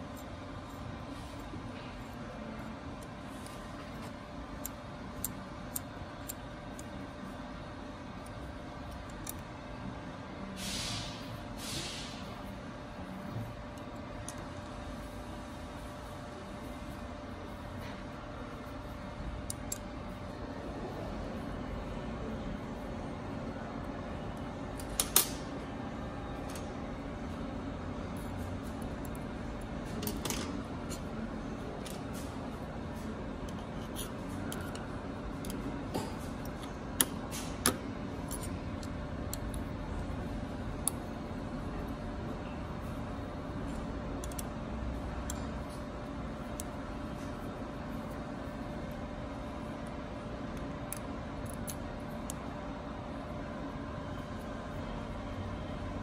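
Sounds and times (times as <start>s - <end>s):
workshop hum: 0.0s - 56.0s
short hisses: 10.6s - 12.2s.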